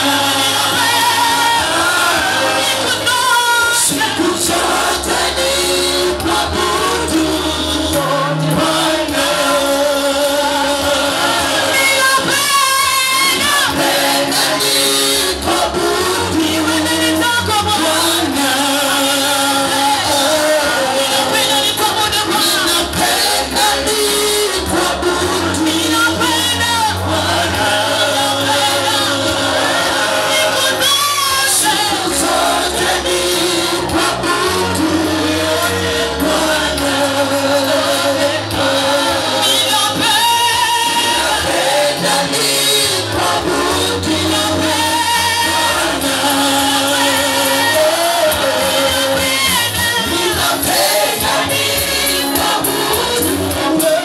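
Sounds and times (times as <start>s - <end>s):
gospel choir singing: 0.0s - 54.0s.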